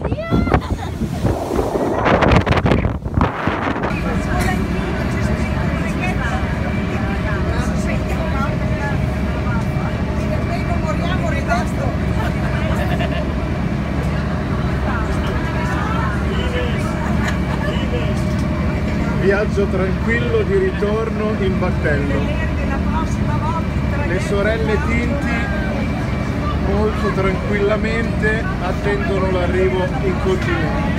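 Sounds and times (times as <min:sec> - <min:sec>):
wind buffeting microphone: 0:00.0 - 0:10.1
boat engine droning: 0:00.0 - 0:30.9
passengers chattering: 0:00.0 - 0:30.9.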